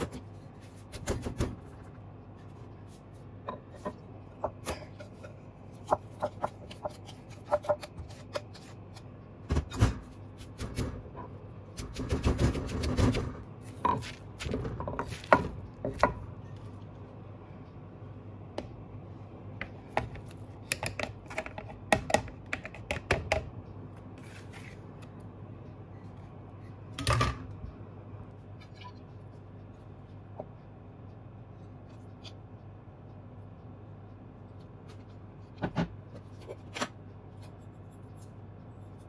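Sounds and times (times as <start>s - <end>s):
low hum: 23.5s - 39.0s.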